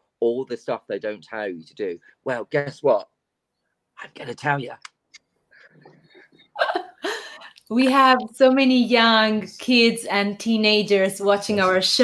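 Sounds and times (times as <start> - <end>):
person laughing: 6.1 - 7.4.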